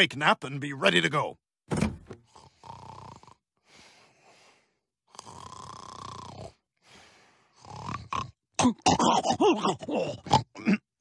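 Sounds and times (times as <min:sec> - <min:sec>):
man snoring: 0:02.2 - 0:09.3.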